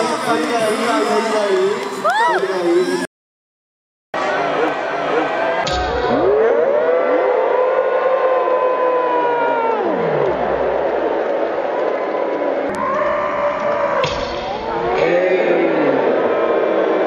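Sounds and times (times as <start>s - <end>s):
crowd screaming: 0.0s - 3.1s, 4.2s - 17.0s
scattered screams and voices: 0.0s - 3.1s, 4.2s - 17.0s.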